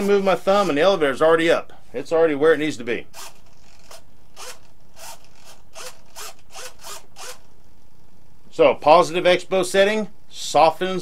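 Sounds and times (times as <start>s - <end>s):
servo whirring buzzes: 3.1s - 7.7s.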